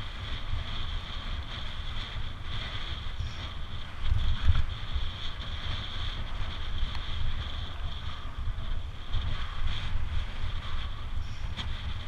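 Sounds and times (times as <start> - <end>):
steady high-pitched hiss: 0.0 - 12.0
wind buffeting microphone: 0.0 - 12.0.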